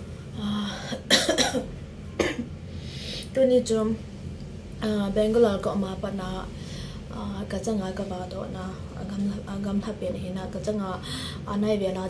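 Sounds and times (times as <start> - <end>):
woman coughing: 0.8 - 2.5
woman clearing her throat: 0.9 - 2.5.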